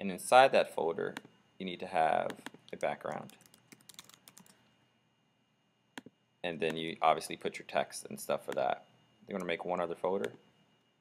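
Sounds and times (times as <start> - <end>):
faint keyboard typing: 2.2 - 4.7.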